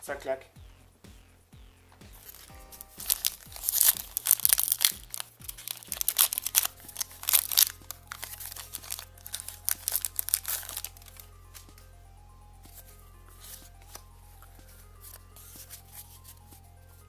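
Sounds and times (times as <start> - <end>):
plastic wrapper crinkling and tearing: 2.2 - 11.6.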